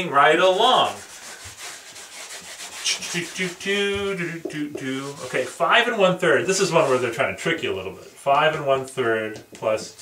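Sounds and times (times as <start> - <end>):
whiteboard being erased: 0.0 - 7.6, 9.8 - 10.0.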